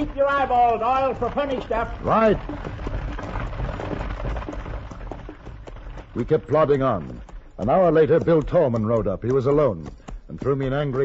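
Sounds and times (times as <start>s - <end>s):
hoof clops on dirt road: 0.0s - 11.0s.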